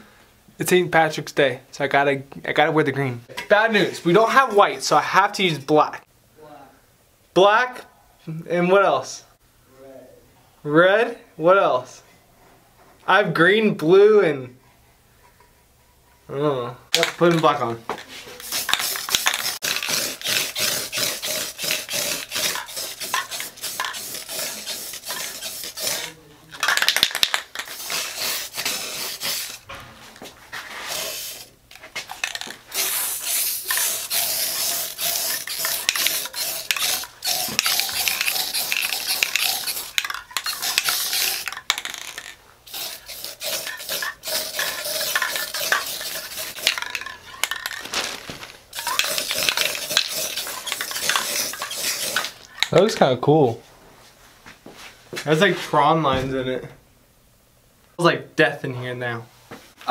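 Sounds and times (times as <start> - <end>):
spray can ball rattling: 16.9 - 29.7, 30.7 - 52.7
spray paint hissing: 18.3 - 29.7, 30.7 - 47.8, 48.7 - 52.6.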